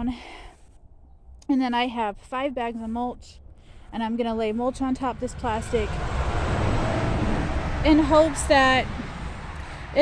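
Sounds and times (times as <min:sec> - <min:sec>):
car passing with tyre hiss: 0:05.0 - 0:10.0.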